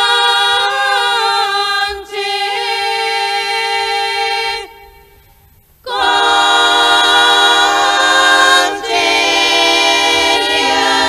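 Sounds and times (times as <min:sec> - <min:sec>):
female choir holding a chord: 0:00.0 - 0:04.8, 0:05.9 - 0:11.0.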